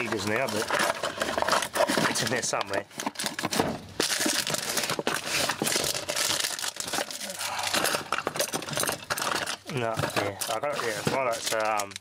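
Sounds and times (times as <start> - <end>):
plastic bags crinkling: 0.0 - 12.0
tools and cables rattling: 0.0 - 12.0.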